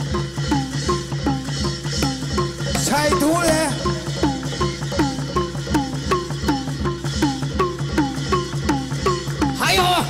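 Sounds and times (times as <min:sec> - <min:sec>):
fast drum beats: 0:00.0 - 0:10.0.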